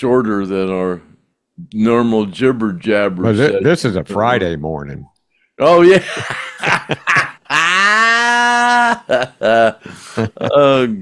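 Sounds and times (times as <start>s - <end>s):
men laughing heartily: 5.8s - 11.0s.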